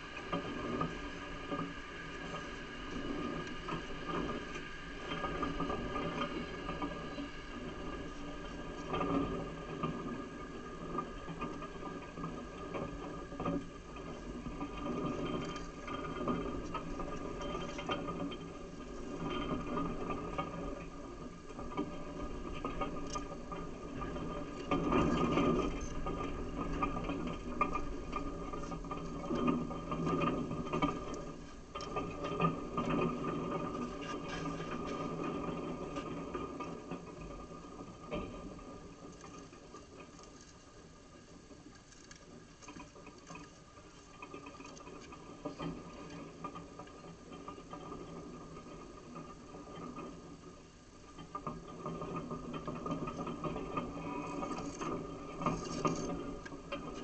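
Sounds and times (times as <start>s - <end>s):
mechanical hum and whirr: 0.0s - 57.0s.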